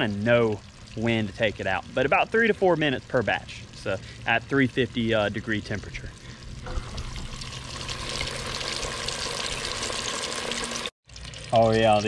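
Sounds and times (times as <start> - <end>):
food deep-frying in oil: 0.0 - 12.0.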